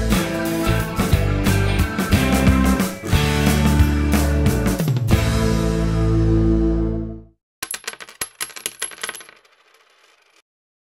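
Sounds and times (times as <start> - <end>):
background music: 0.0 - 7.3.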